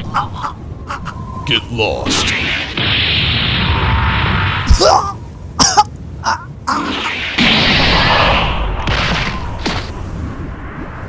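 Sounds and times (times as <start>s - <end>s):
vocal grunts and cries: 4.7s - 7.1s.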